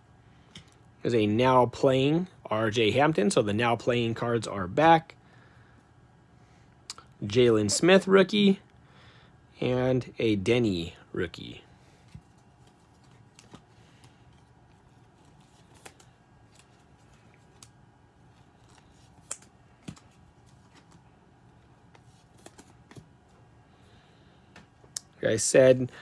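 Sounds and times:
trading cards clicking and snapping: 0:15.2 - 0:17.8, 0:18.6 - 0:21.0.

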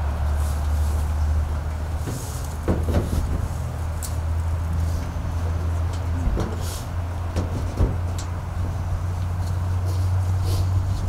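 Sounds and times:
idling motor hum: 0:00.0 - 0:11.0.

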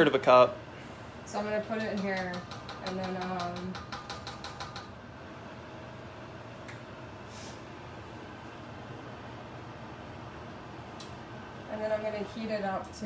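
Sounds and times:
kitchen background hum: 0:00.0 - 0:13.0
short hiss: 0:07.3 - 0:07.6.

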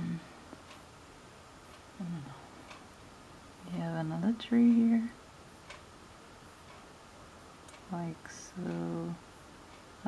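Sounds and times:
faint tick: 0:00.5 - 0:00.8.

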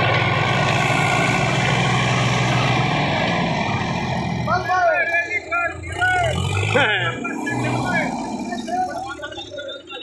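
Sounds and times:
tractor diesel engines running: 0:00.0 - 0:10.0
men calling out: 0:04.5 - 0:10.0.

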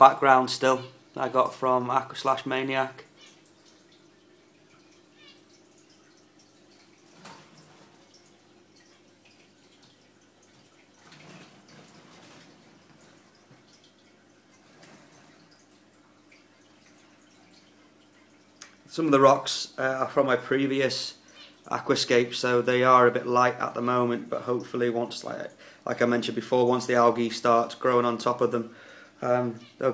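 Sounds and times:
water trickling and dripping: 0:00.0 - 0:29.9.

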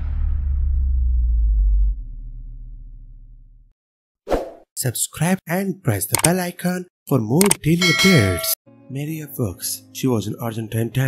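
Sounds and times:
deep low sound effect: 0:00.0 - 0:03.7
narrator speaking: 0:04.8 - 0:11.0.

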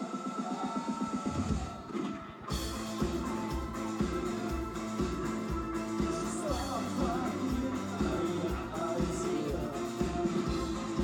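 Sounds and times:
pulsing synthesizer rhythm: 0:00.0 - 0:11.0.

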